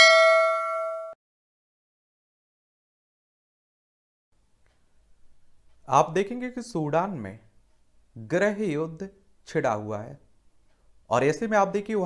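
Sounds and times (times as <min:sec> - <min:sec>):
bell-like ding: 0:00.0 - 0:01.2.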